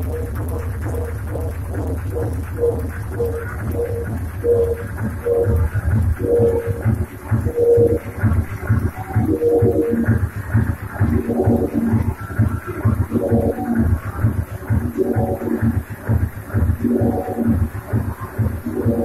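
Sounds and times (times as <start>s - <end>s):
deep pulsing bass: 0.0s - 19.0s
electronic dance music: 0.0s - 19.0s
repeating synth note: 0.0s - 19.0s.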